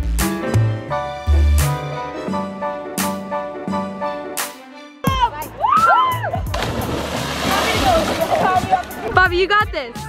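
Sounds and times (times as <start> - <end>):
swimmers shouting and whooping: 5.3 - 6.5
splashing water: 6.5 - 9.2.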